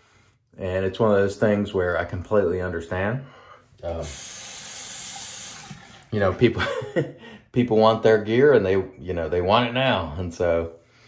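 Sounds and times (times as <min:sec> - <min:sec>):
sink tap running: 0:03.8 - 0:06.4
razor rinsed under water: 0:03.8 - 0:06.6.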